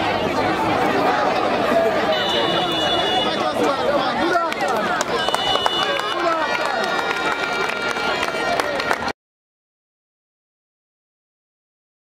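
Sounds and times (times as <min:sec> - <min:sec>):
people calling out: 0:00.0 - 0:09.0.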